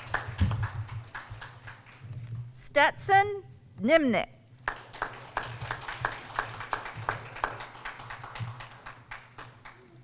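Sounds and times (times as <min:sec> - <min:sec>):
people clapping: 0:00.0 - 0:02.3, 0:04.6 - 0:10.0.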